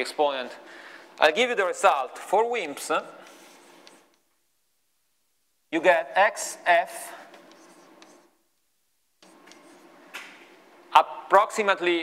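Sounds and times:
chalk scratching on blackboard: 3.2s - 4.2s, 6.8s - 8.4s, 9.2s - 10.0s
light chalk taps: 7.3s - 8.3s.

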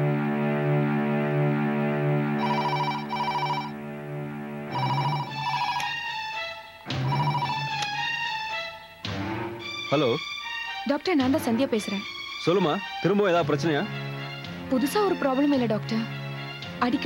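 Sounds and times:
background music: 0.0s - 17.0s
telephone ringing: 2.4s - 3.8s, 4.7s - 8.0s.

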